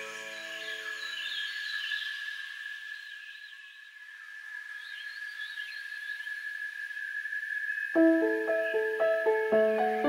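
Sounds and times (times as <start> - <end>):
faint warbling bird calls: 0.0 - 10.0
high-pitched insect drone: 0.0 - 10.0.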